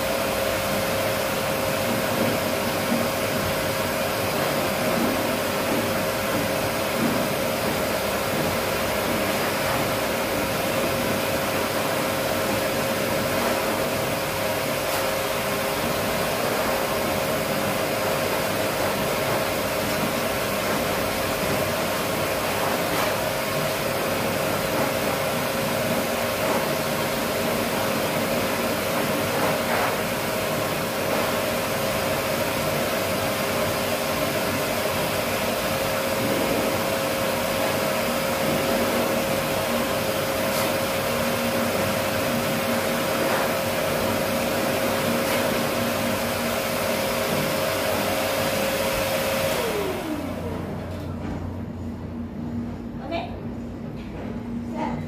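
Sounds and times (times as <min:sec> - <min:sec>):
pet dryer blowing air with whine: 0:00.0 - 0:52.6.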